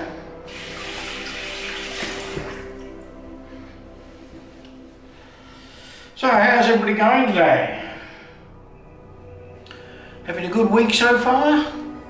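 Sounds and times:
soft background music: 0.0s - 12.0s
tap water running into sink: 0.5s - 2.8s.

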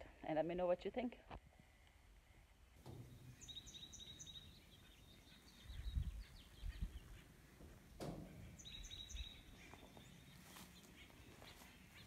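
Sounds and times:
faint outdoor background noise: 0.0s - 12.0s
small birds chirping: 2.7s - 12.0s
low rumbling microphone bumps: 5.6s - 10.2s.

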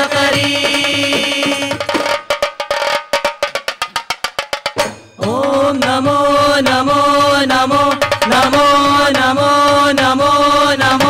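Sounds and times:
group singing long notes: 0.0s - 2.2s, 5.2s - 11.0s
drum strokes: 0.0s - 11.0s.

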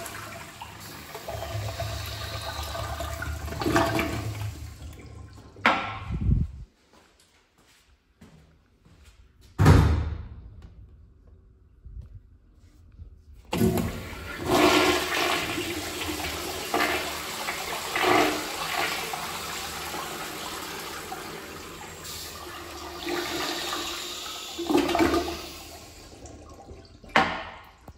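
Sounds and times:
toilet bowl refilling: 0.0s - 5.8s, 13.5s - 27.9s
toilet flushing: 0.0s - 5.8s, 13.5s - 27.9s.

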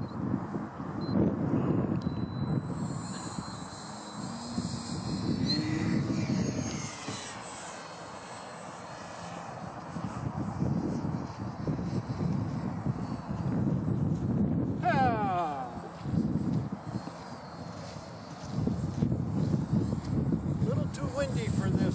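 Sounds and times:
model airplane motor whining: 1.4s - 21.9s.

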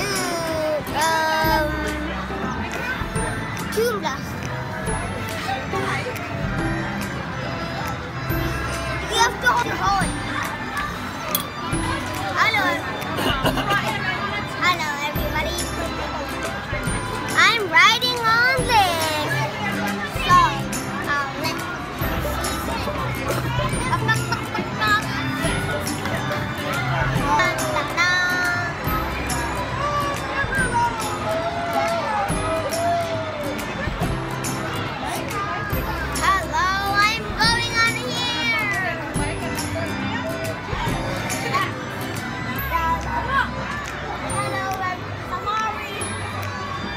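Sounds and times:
carousel music: 0.0s - 46.9s.

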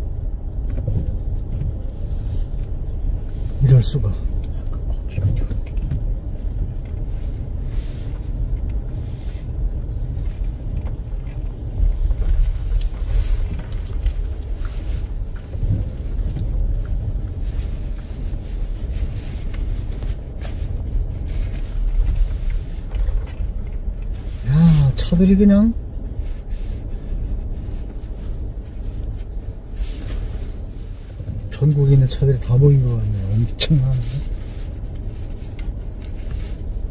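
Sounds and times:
car driving on snow: 0.0s - 36.9s
light clicks and knocks: 4.4s - 7.1s.

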